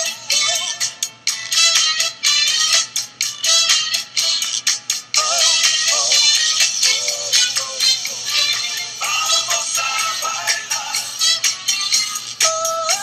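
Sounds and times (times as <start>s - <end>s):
person singing: 0.0s - 1.9s, 5.2s - 13.0s
music with steady beat: 0.0s - 13.0s.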